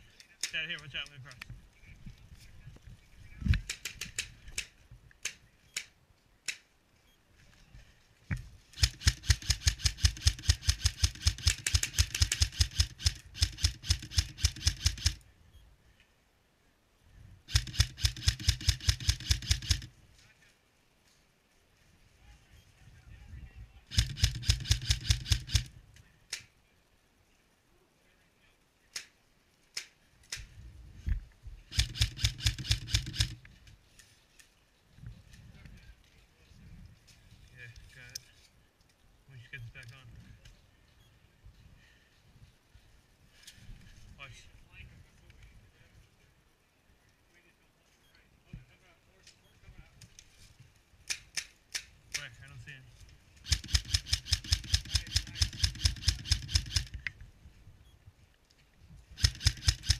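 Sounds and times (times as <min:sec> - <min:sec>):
airsoft rifle rapid shots: 0:08.8 - 0:15.2, 0:17.5 - 0:19.9, 0:23.9 - 0:25.7, 0:31.7 - 0:33.4, 0:53.4 - 0:57.0, 0:59.2 - 0:59.9.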